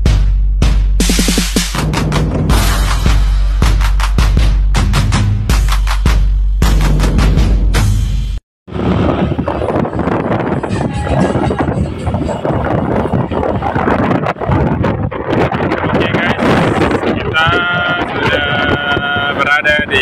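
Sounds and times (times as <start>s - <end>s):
road rumble: 8.7s - 20.0s
wind buffeting microphone: 8.7s - 20.0s.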